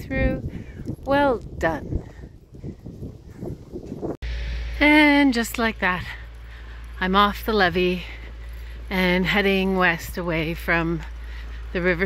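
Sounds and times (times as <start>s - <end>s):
wind rumble on microphone: 0.0s - 4.8s
footsteps on asphalt: 0.4s - 4.1s, 5.8s - 12.0s
woman speaking: 1.1s - 1.9s, 4.8s - 6.2s, 7.0s - 8.1s, 8.9s - 11.1s, 11.8s - 12.0s.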